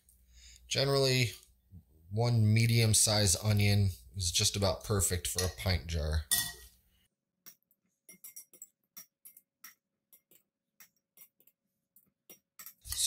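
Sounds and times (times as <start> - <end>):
metal tongs clinking on glass: 6.3 - 6.6.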